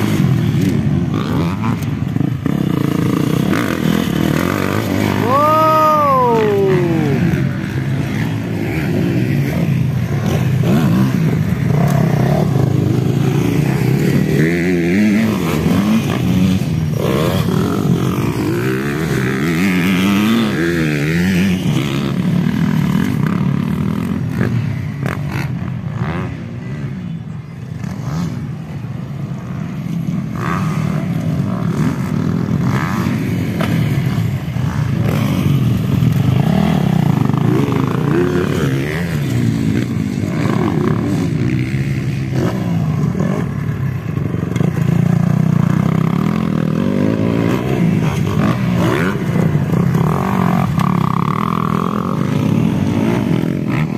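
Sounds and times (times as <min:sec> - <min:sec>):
dirt bike engines revving: 0:00.0 - 0:53.9.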